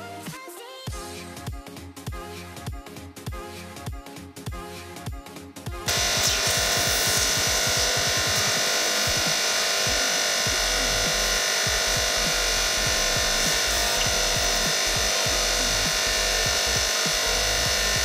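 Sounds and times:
electronic music with steady beat: 0.0s - 18.0s
hydraulic press running: 5.9s - 18.0s.

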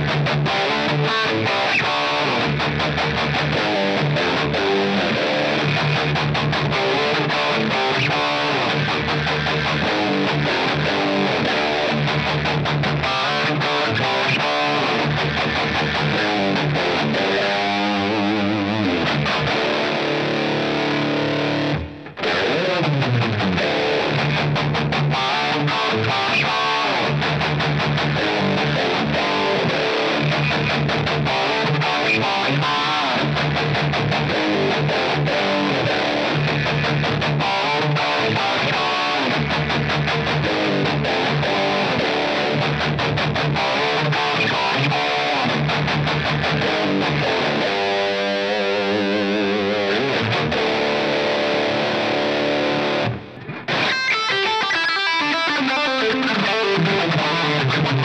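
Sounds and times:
electric guitar riff: 0.0s - 58.0s.

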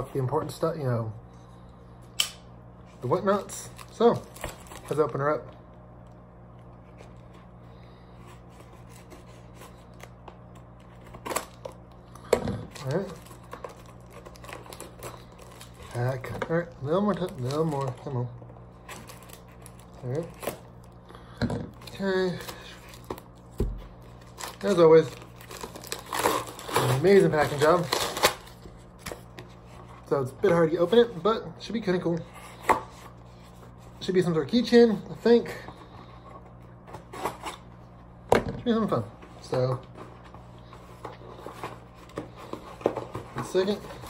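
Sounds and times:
steady low hum: 0.0s - 44.0s
plastic packaging crinkling: 12.6s - 18.2s, 24.0s - 29.0s.

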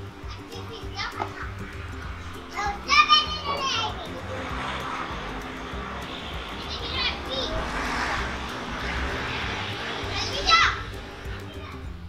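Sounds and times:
quiet background music: 0.0s - 12.0s
children playing and calling out: 0.1s - 4.8s, 6.3s - 8.4s, 9.4s - 11.9s
high-pitched child's shout: 2.6s - 4.1s, 10.1s - 10.9s.

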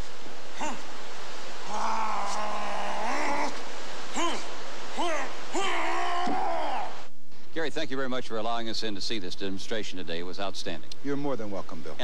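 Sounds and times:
man shouting martial arts yells: 4.2s - 7.0s.

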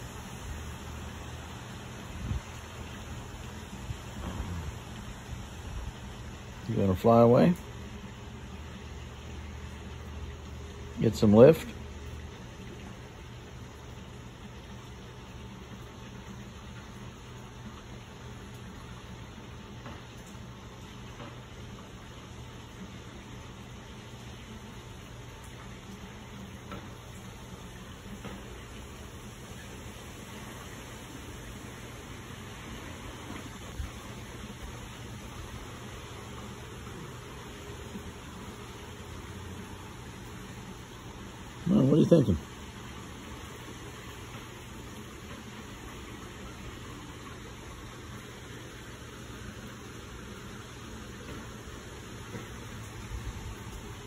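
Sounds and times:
wind noise on microphone: 2.1s - 2.5s.

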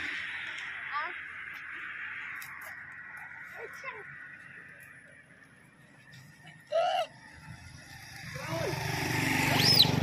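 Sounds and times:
vehicle approaching on road: 0.0s - 10.0s.

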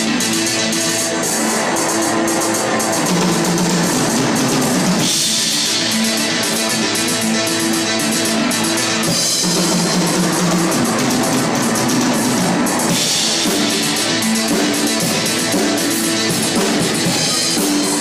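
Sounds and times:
drum kit with cymbals: 0.0s - 18.0s
keyboard notes: 0.0s - 18.0s
sustained bass notes: 0.0s - 18.0s.

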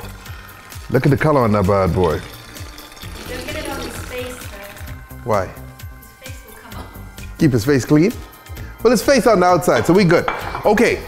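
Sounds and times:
liquid pouring into a glass pitcher: 0.0s - 5.1s
background music: 0.0s - 11.0s.

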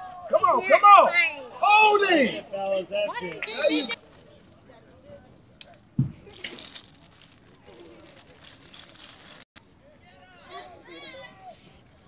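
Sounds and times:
distant voices of players and spectators: 0.0s - 12.0s.

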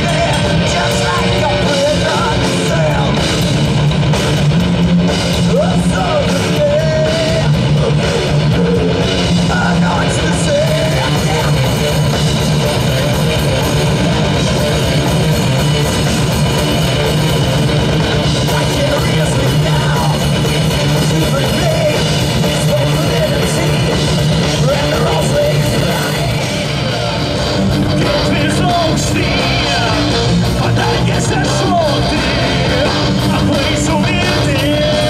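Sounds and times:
distorted electric guitars: 0.0s - 35.0s
drum kit: 0.0s - 35.0s
heavy metal band playing live: 0.0s - 35.0s.

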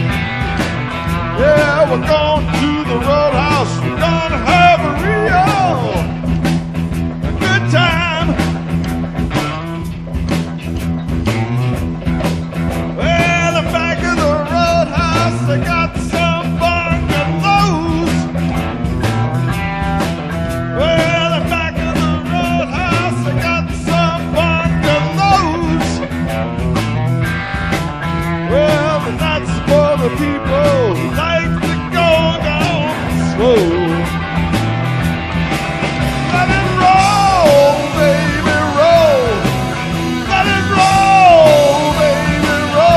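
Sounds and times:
rock band playing: 0.0s - 42.9s.

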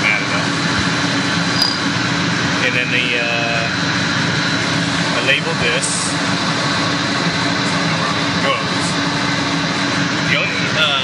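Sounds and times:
constant high whine: 0.0s - 11.0s
running machinery drone: 0.0s - 11.0s.

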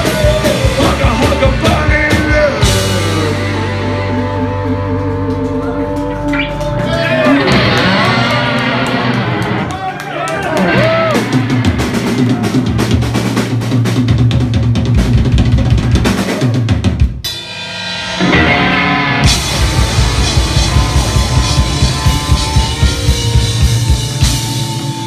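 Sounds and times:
drum kit pounding: 0.0s - 25.0s
rock band playing live: 0.0s - 25.0s.

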